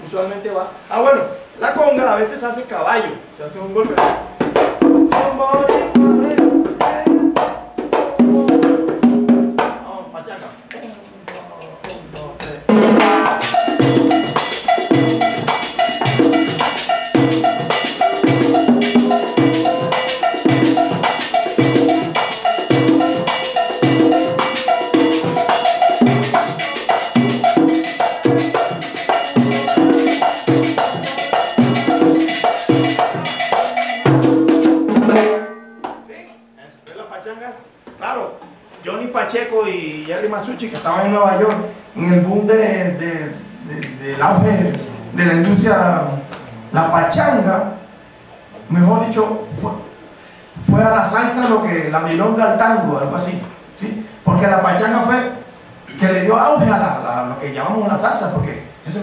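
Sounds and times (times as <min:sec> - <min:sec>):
conga and timbal playing: 0:00.0 - 0:59.0
band playing sustained high notes: 0:13.2 - 0:34.2.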